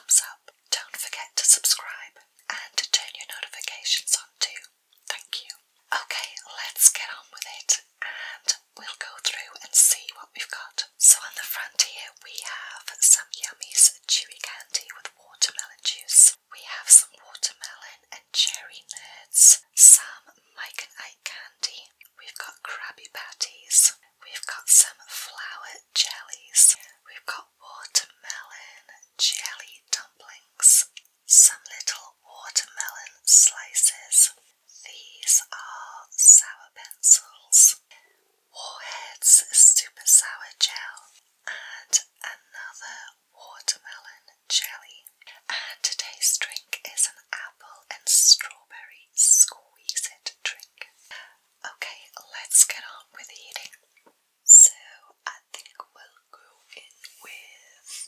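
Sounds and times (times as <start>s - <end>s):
woman whispering: 0.0s - 53.8s, 54.5s - 58.0s.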